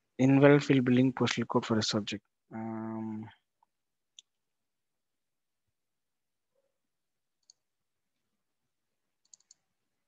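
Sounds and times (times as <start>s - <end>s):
faint computer mouse clicks: 9.2s - 9.6s.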